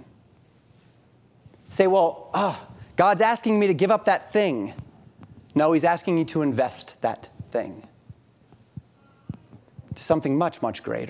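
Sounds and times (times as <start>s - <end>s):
soft low thumps: 4.7s - 5.6s, 7.3s - 10.2s.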